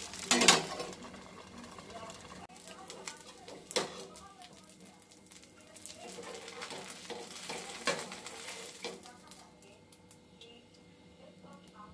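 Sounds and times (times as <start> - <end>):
light sizzle: 0.0 - 11.9
spatula scraping on griddle: 6.0 - 9.1.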